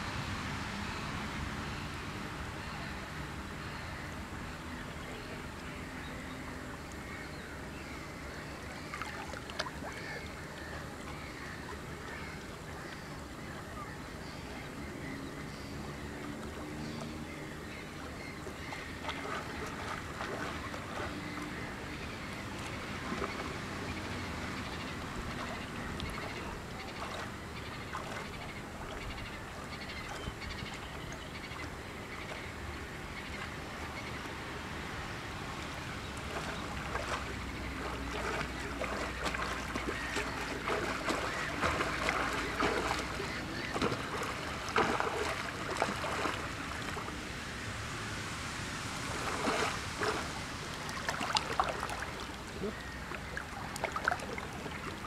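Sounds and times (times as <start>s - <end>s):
small waves lapping on rocks: 4.9s - 14.7s, 16.0s - 55.0s
swimmer splashing strokes: 18.6s - 31.5s, 35.2s - 55.0s.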